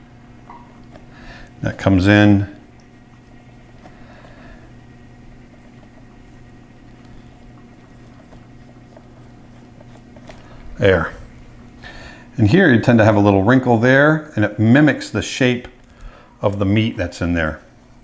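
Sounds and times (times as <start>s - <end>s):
low electrical hum: 0.0s - 18.0s
stylus scratching on tablet: 5.4s - 6.6s, 7.2s - 10.5s.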